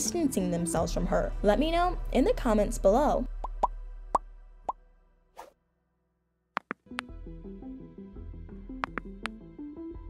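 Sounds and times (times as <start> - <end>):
background music: 0.0 - 5.4, 6.6 - 10.0.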